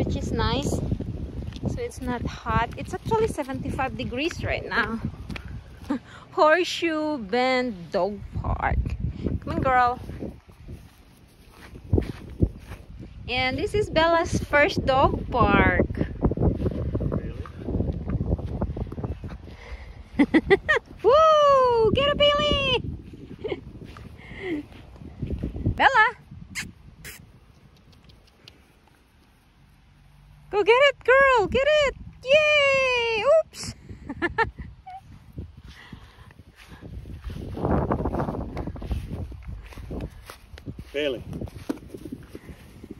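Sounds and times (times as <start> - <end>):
wind buffeting microphone: 0.0 - 28.2, 30.5 - 42.9
footsteps through grass: 9.4 - 14.6, 35.0 - 42.9
thumps on microphone: 41.4 - 42.1.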